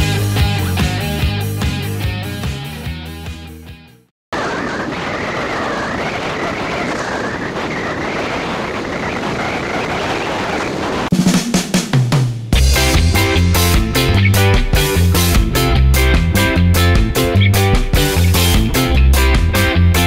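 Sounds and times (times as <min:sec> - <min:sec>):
backing music: 0:00.0 - 0:04.0, 0:11.1 - 0:20.0
rock music with drum hits: 0:00.0 - 0:04.0, 0:11.1 - 0:20.0
snare drum roll: 0:11.1 - 0:12.6.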